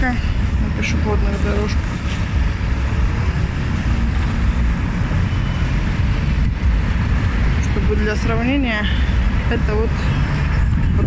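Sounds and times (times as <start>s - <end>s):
street traffic rumble: 0.0s - 11.0s
wind on microphone: 0.0s - 11.0s.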